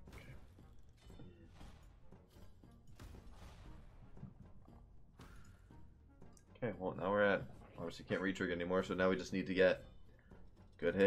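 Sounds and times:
slot game background music: 0.0 - 11.0.

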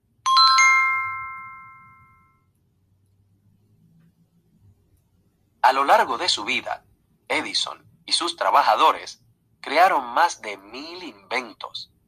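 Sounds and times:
electronic bell-like chime: 0.3 - 2.5.

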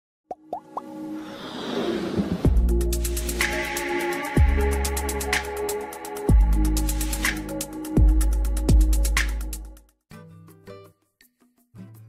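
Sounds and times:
quick plops rising in pitch: 0.3 - 0.9.

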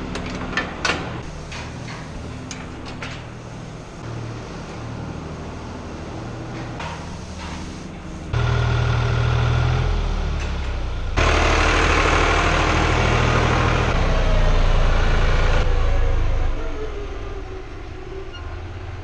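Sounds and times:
tractor diesel engine running: 8.3 - 15.9.

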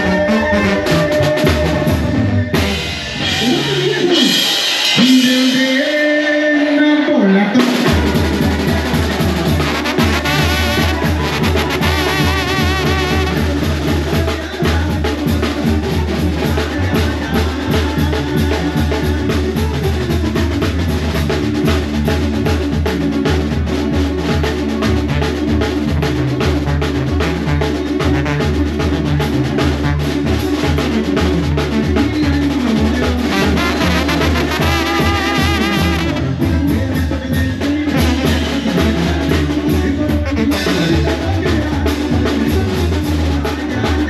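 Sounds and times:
live brass band music: 0.0 - 44.0.

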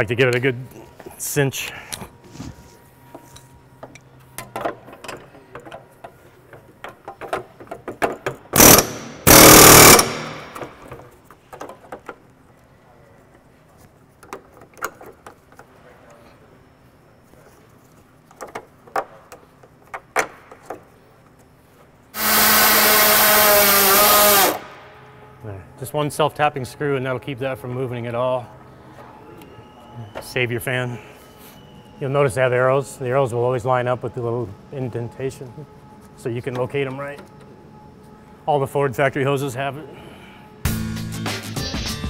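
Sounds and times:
power drill driving screw: 8.6 - 10.7, 22.2 - 24.7
short loud bursts: 8.6 - 10.7, 22.2 - 24.9.

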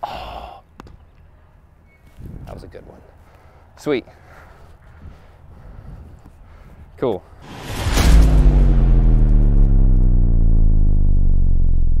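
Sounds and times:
deep hit: 7.4 - 12.0
long low sustained tone: 7.9 - 12.0.

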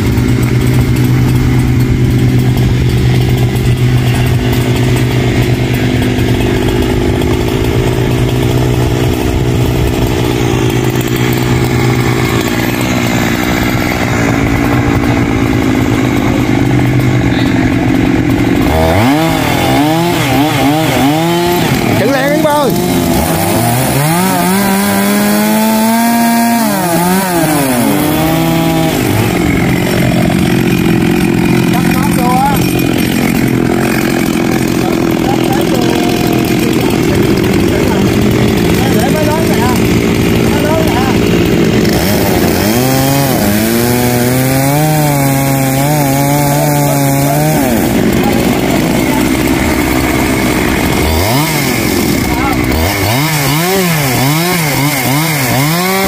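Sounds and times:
chainsaw engine running: 0.0 - 56.0.

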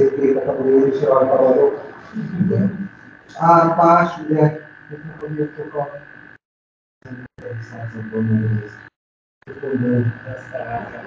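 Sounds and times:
man speaking over video call: 0.0 - 5.9, 7.1 - 8.7, 9.5 - 11.0
steady high-pitched tone: 0.0 - 6.4, 7.0 - 8.9, 9.5 - 11.0.

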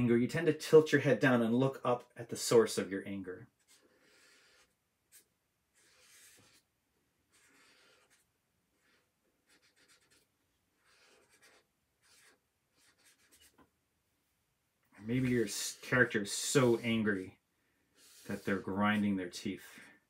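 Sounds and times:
marker scratching on paper: 3.6 - 6.7, 7.3 - 13.7, 15.0 - 19.7.

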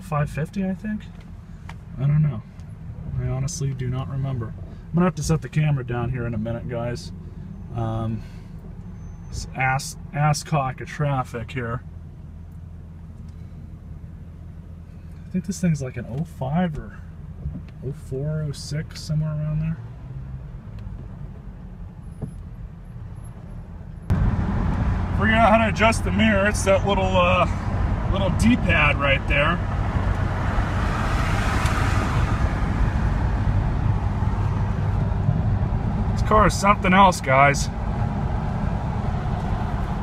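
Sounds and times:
car engine hum inside cabin: 0.0 - 40.0
road noise: 0.0 - 40.0.

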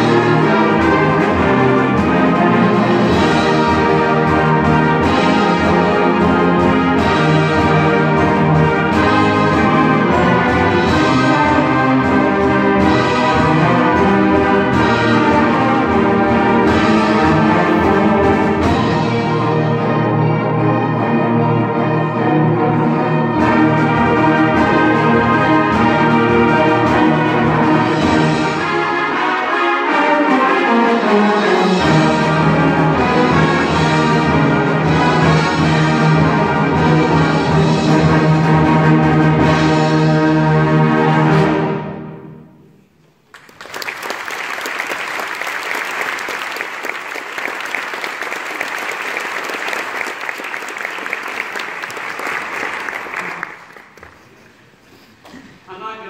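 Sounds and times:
concert band playing: 0.0 - 42.4
audience applauding: 43.2 - 54.6.

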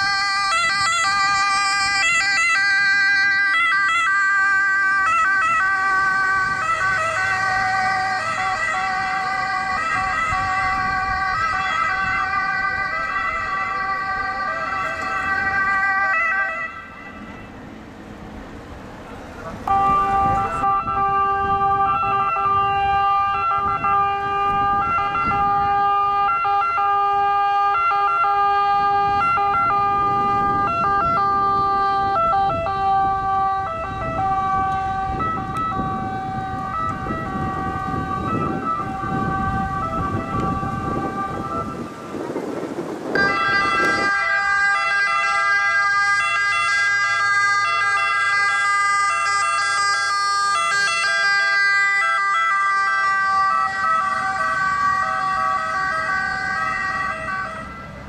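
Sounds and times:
two-tone ambulance siren: 0.0 - 17.7, 19.4 - 58.0.

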